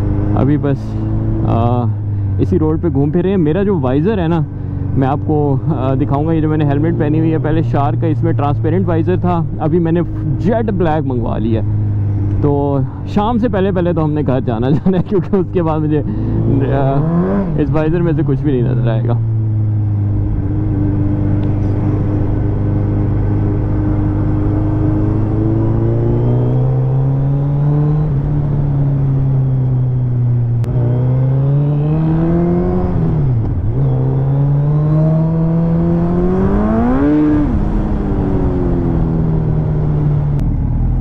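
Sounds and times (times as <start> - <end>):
motorcycle engine running: 0.0 - 41.0.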